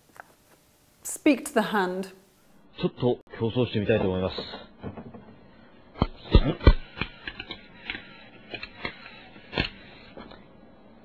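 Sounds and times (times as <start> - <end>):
sharp clicks and crackles: 6.0 - 10.5.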